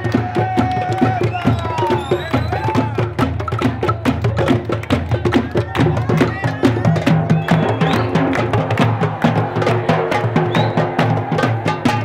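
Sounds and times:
crowd voices calling out: 0.0s - 12.0s
hand-held drums beaten with sticks: 0.0s - 12.0s.

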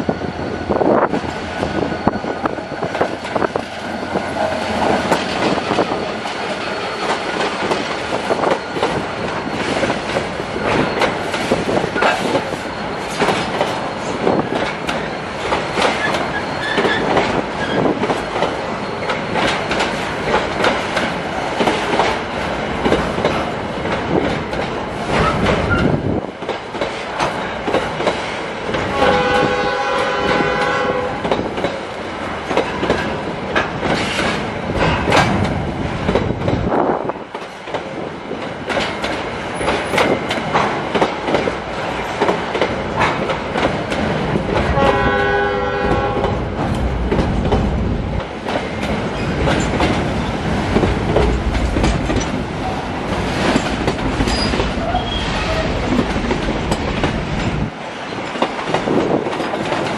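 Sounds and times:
diesel locomotive passing: 0.0s - 59.9s
train wheels clattering on rails: 0.0s - 59.9s.

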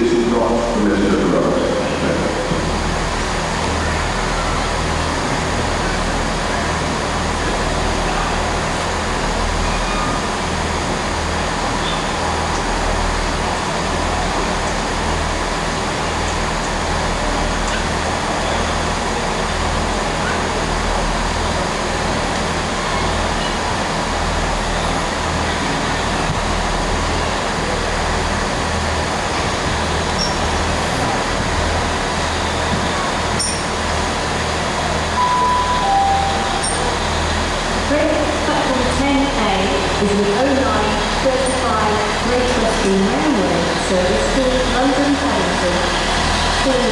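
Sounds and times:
steam locomotive rumbling: 0.0s - 46.9s
two-note falling tone: 35.2s - 37.2s.

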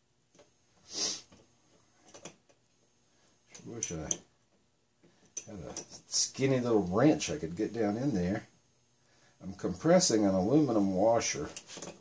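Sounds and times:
short hiss burst: 0.8s - 1.3s.

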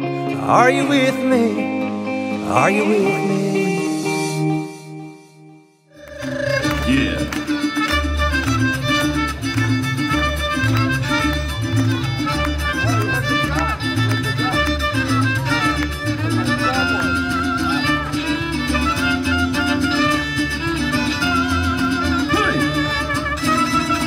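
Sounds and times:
mariachi band playing: 0.0s - 5.2s, 6.0s - 24.0s
rhythmic bass line: 6.0s - 24.0s
violins playing vibrato melody: 6.0s - 24.0s.

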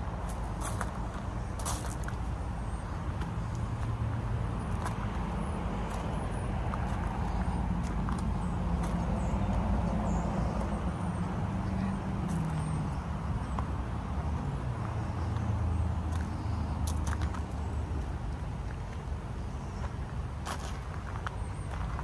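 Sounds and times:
rumble of motor traffic: 0.0s - 22.0s.

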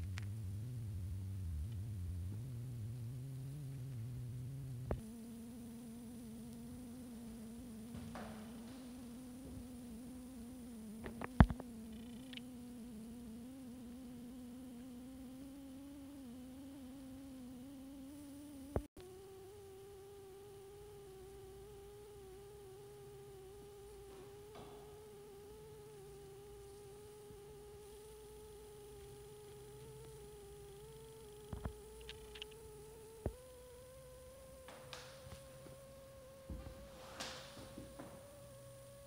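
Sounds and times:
wavering hum rising in pitch: 0.0s - 39.0s.

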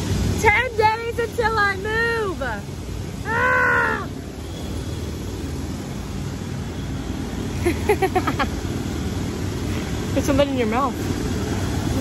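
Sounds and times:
city traffic rumble: 0.0s - 12.0s.

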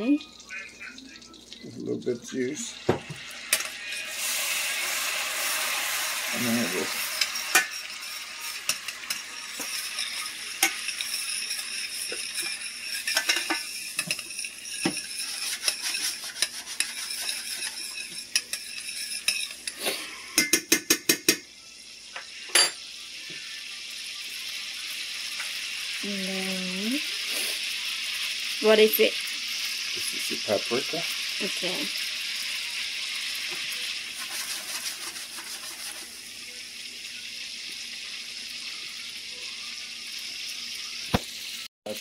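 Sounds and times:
garlic sizzling in a frying pan: 0.0s - 42.0s
utensil tapping and scraping pan: 7.2s - 21.4s, 33.5s - 36.1s.

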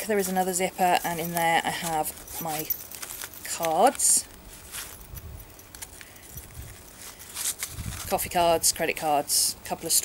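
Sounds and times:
bag rustling: 0.0s - 8.6s
plastic cards clicking: 0.4s - 5.0s.

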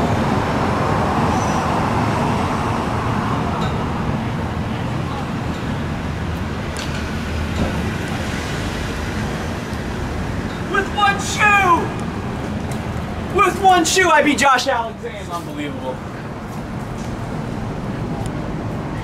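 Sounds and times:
city street traffic: 0.0s - 19.0s.

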